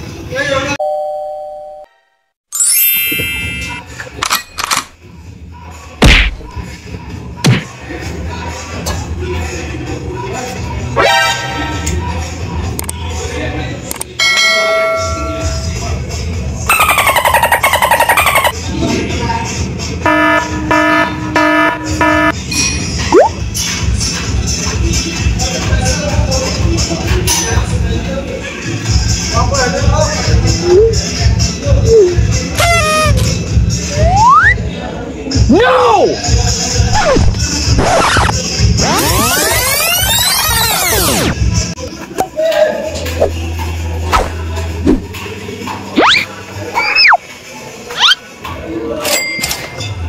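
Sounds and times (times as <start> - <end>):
ringing tone: 0.8 - 3.9
beep-like chime: 2.5 - 3.8
background music: 2.6 - 49.0
fast rattling warble: 16.7 - 18.6.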